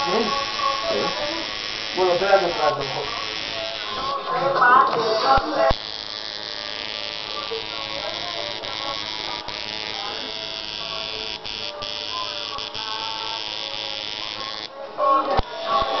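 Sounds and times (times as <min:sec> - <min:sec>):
tattoo machine buzzing: 0:00.0 - 0:16.0.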